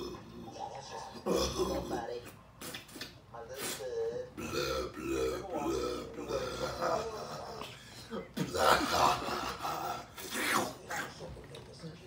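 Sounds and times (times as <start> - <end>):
man belching: 4.4 - 7.6.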